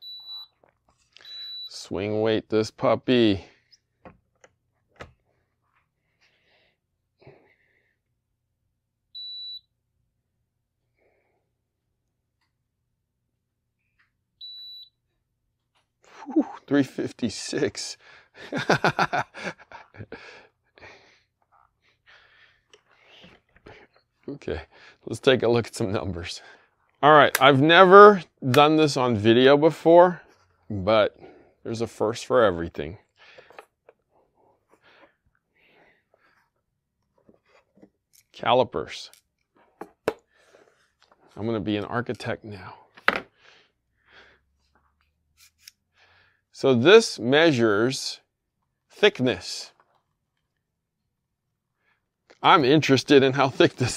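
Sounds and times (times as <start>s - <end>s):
man laughing: 16.1s - 16.7s, 18.4s - 20.9s.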